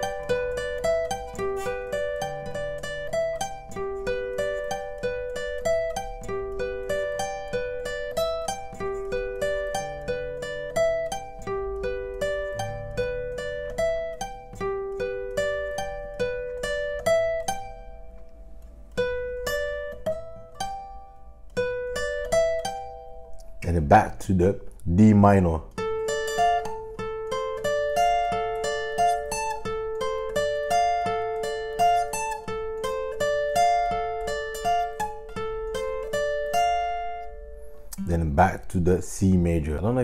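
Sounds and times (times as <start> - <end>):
acoustic guitar arpeggios: 0.0 - 40.0.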